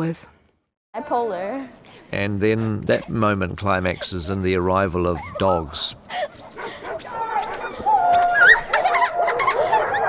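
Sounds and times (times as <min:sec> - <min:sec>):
dogs yelping and whining: 0:05.1 - 0:10.0.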